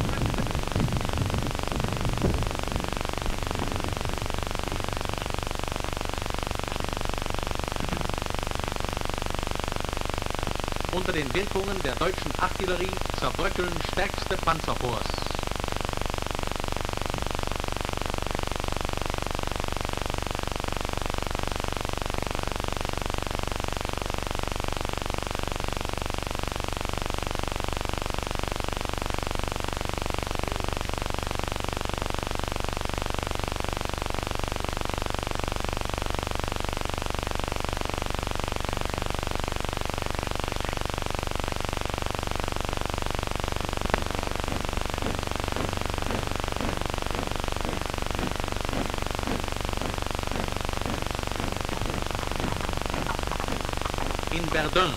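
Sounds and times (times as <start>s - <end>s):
film soundtrack hiss and static: 0.0s - 54.9s.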